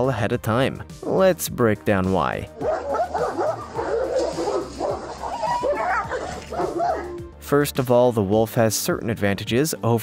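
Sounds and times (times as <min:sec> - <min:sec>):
dogs fighting and yelping: 0:02.6 - 0:07.2.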